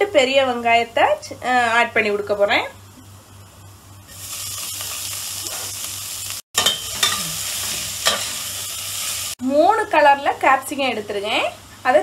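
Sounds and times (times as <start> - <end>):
onions sizzling in hot oil: 3.9 - 12.0.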